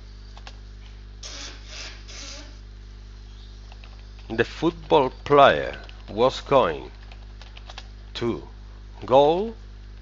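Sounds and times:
low electrical hum: 0:00.0 - 0:10.0
short scraping noises: 0:01.2 - 0:02.6.

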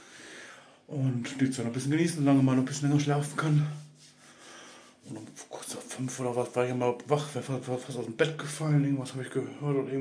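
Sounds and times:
man talking: 0:00.9 - 0:03.9, 0:05.0 - 0:10.0.

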